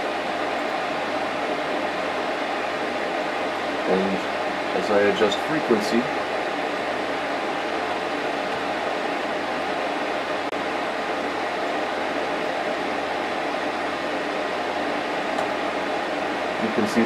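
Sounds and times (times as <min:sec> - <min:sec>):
cooling fans humming: 0:00.0 - 0:17.0.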